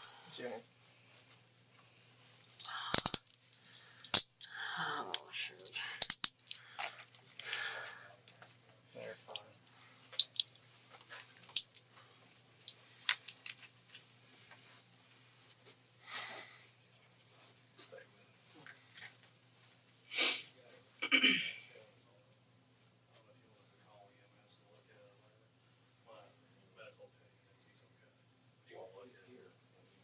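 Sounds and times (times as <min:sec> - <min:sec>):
handcuffs clicking and clinking: 0:00.0 - 0:00.3, 0:02.6 - 0:04.6, 0:05.2 - 0:07.6, 0:10.2 - 0:10.6, 0:11.5 - 0:11.9.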